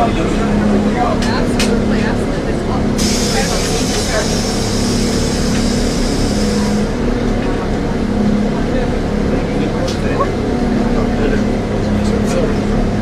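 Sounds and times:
bus engine drone: 0:00.0 - 0:13.0
people talking quietly: 0:00.0 - 0:13.0
hiss: 0:03.0 - 0:06.8.

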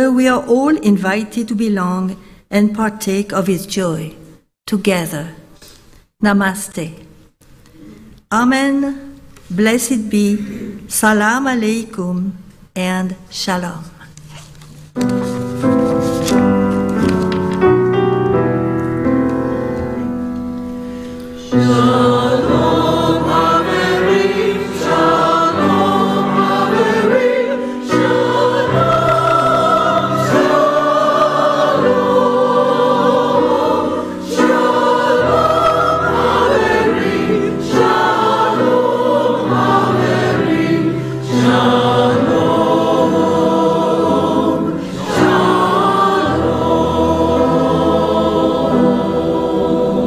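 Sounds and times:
church choir singing a hymn: 0:21.2 - 0:50.0.

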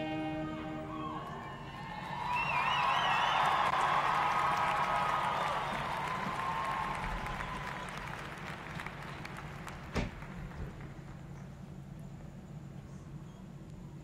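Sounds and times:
marching band chord: 0:00.0 - 0:02.1
high warbling whoop: 0:00.0 - 0:07.6
audience applauding and cheering: 0:00.6 - 0:11.3.

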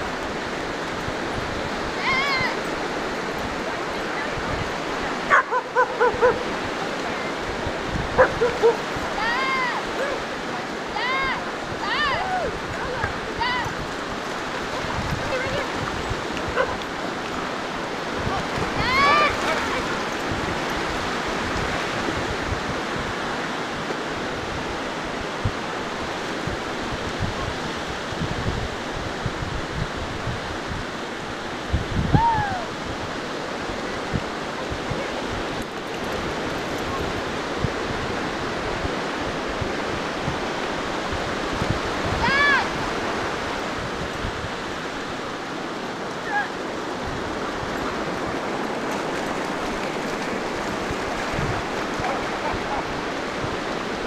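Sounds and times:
ocean surf washing onto beach: 0:00.0 - 0:54.0
dog barking: 0:05.3 - 0:06.4, 0:08.2 - 0:08.9, 0:16.5 - 0:16.8, 0:52.0 - 0:52.9.

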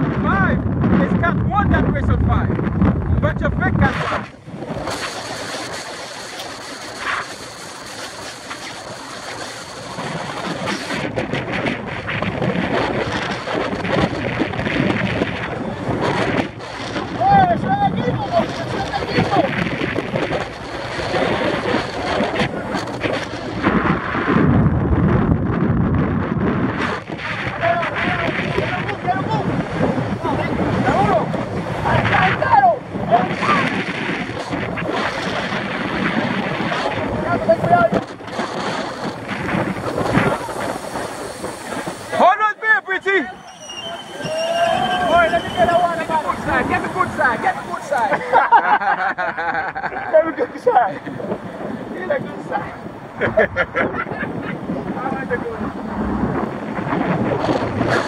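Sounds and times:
wind buffeting microphone: 0:00.0 - 0:58.0
car road noise: 0:34.0 - 0:48.2
indistinct voices: 0:41.6 - 0:48.3.

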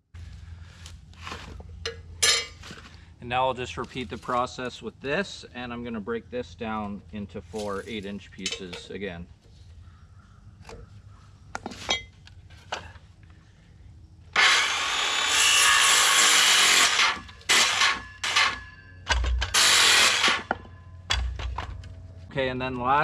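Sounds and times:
circular saw cutting board: 0:14.3 - 0:20.7.

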